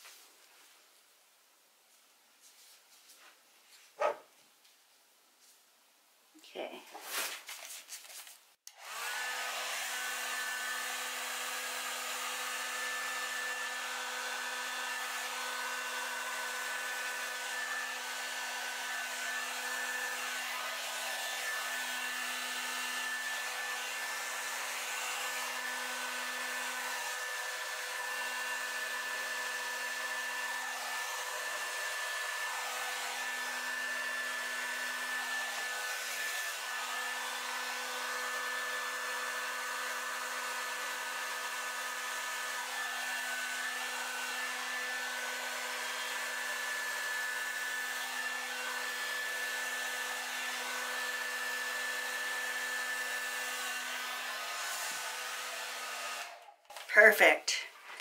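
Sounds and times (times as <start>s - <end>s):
hair dryer running: 8.7s - 58.0s.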